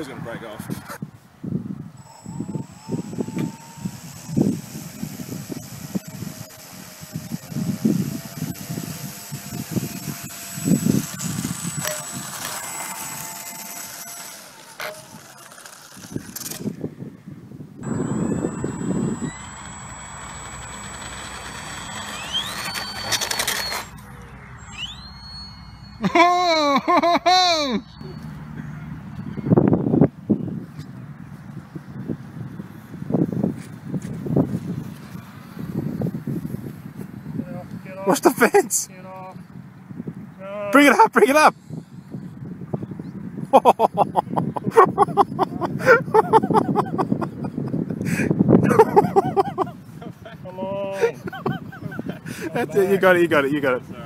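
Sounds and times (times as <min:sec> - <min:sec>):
wind on microphone: 0:00.0 - 0:13.3, 0:16.0 - 0:19.9, 0:28.0 - 0:38.1, 0:41.5 - 0:52.6
model plane propeller motor: 0:01.9 - 0:16.8, 0:17.8 - 0:26.2, 0:45.1 - 0:49.7.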